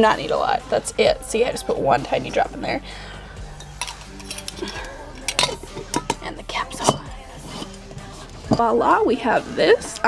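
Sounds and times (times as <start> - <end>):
metal jar lid clinking: 3.5 - 8.7.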